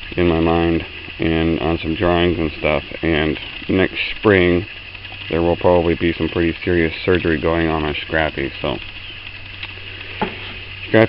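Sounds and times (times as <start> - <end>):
background hiss: 0.0 - 11.0
low hum: 0.0 - 11.0.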